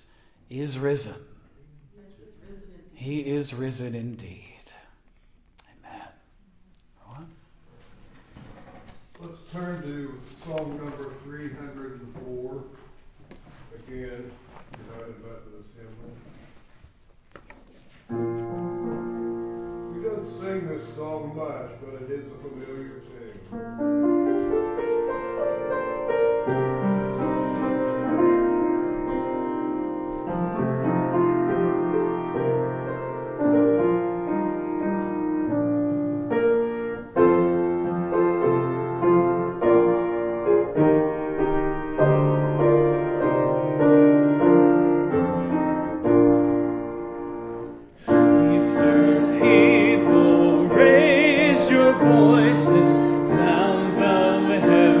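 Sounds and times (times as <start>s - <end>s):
pages rustling and clicking: 8.2s - 11.4s
keyboard playing hymn chords: 18.2s - 55.0s.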